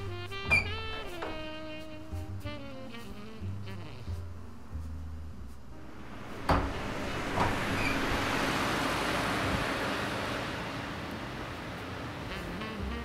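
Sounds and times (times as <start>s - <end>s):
car passing by: 5.8s - 13.0s.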